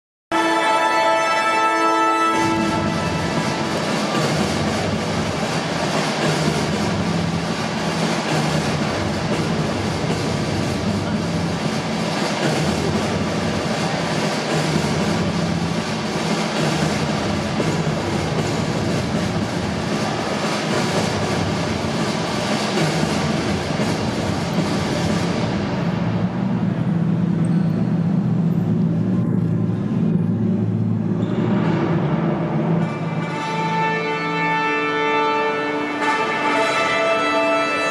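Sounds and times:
pitched music: 0.3s - 27.2s, 32.5s - 37.9s
dense rushing noise effect: 2.4s - 33.4s
steady low hum: 2.4s - 33.4s.

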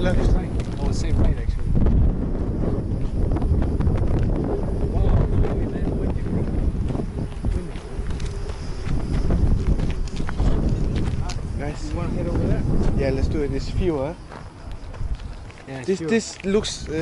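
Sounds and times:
wind buffeting microphone: 0.0s - 17.0s
footsteps crunching on gravel: 0.2s - 4.5s, 5.6s - 13.0s, 13.7s - 17.0s.

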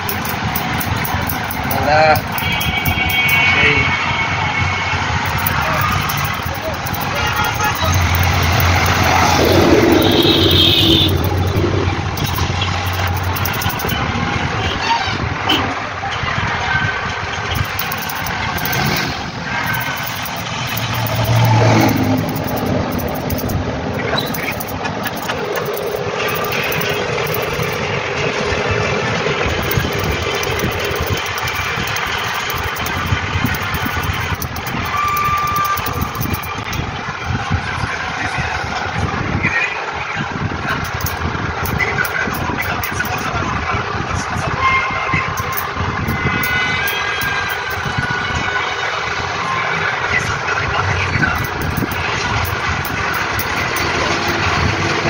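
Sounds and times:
motor vehicles passing: 7.8s - 13.2s.

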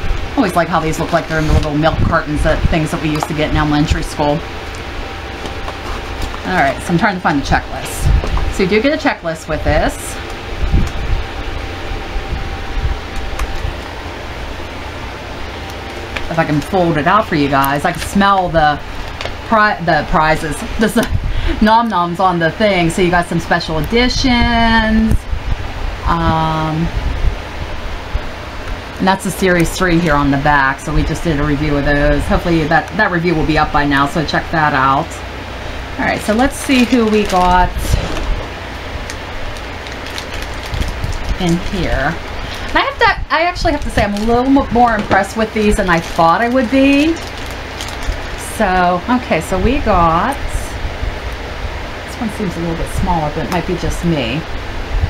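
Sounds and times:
fan hiss and rumble: 0.0s - 55.0s
paper leaflet rustling: 36.2s - 42.9s, 43.6s - 48.4s.

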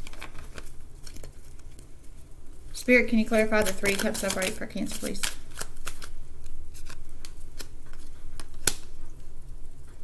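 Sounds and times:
cards being shuffled: 0.0s - 1.8s, 3.2s - 8.9s.

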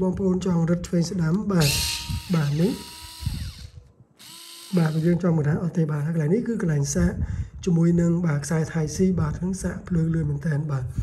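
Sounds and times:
electric screwdriver motor whirring: 1.6s - 5.2s.

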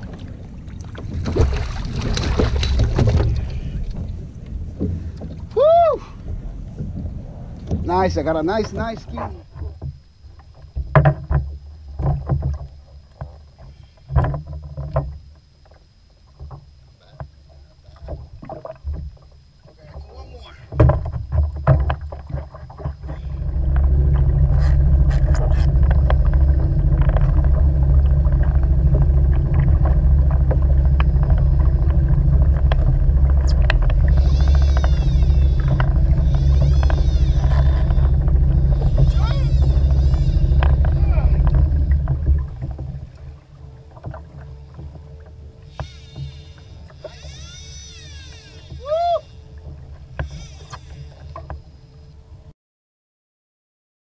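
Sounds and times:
outboard motor droning: 0.0s - 52.5s
knocks and clunks of gear: 1.0s - 5.4s, 6.2s - 17.4s, 18.0s - 48.8s.

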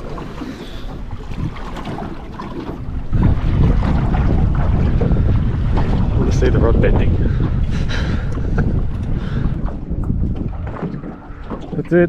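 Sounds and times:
water lapping against boat: 0.0s - 12.0s
wind buffeting microphone: 0.0s - 12.0s.

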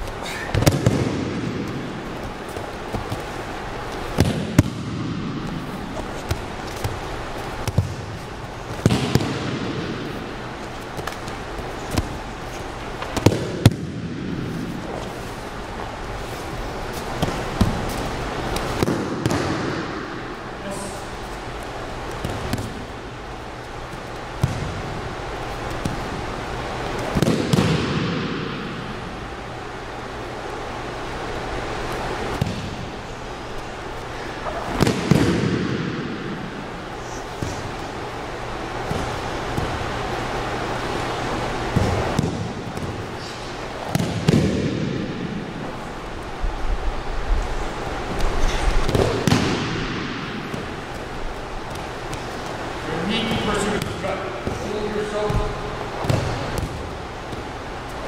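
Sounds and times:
thuds and slaps on mats: 0.5s - 7.0s, 7.6s - 9.9s, 17.2s - 20.0s, 23.8s - 25.0s, 25.6s - 28.6s, 32.3s - 32.8s, 38.8s - 40.0s, 41.7s - 43.2s, 43.8s - 45.2s, 48.1s - 52.6s, 55.3s - 57.6s.

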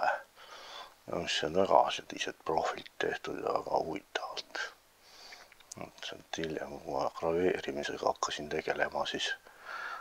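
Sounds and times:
man speaking softly: 0.0s - 0.3s, 1.0s - 4.8s, 5.7s - 9.4s
faint hiss: 0.0s - 10.0s.

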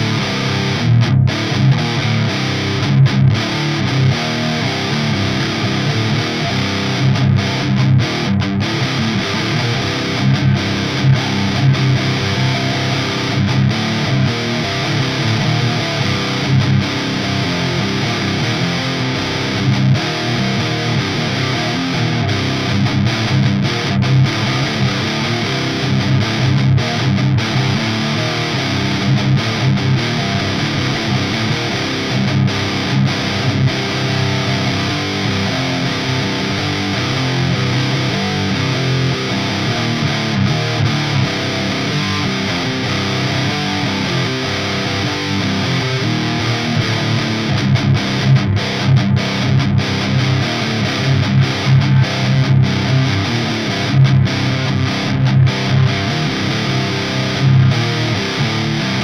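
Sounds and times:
distorted electric guitar riffs: 0.0s - 59.0s.

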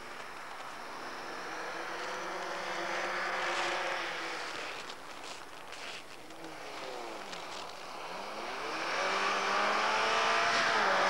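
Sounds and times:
rally car engine passing: 0.3s - 5.0s, 6.3s - 11.0s.

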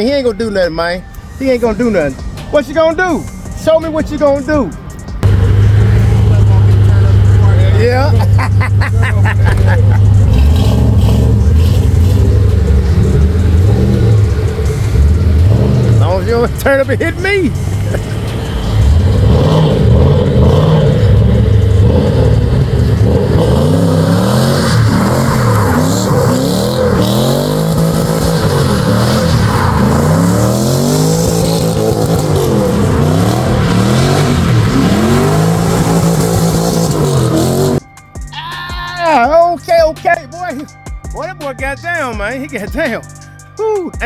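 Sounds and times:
tires spinning: 2.8s - 37.8s
car engine revving hard: 5.2s - 37.8s.

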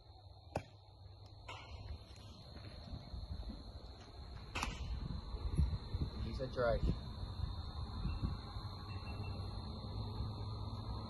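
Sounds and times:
high-pitched whine: 0.0s - 11.0s
sharp smack: 0.5s - 0.7s, 4.5s - 5.0s.

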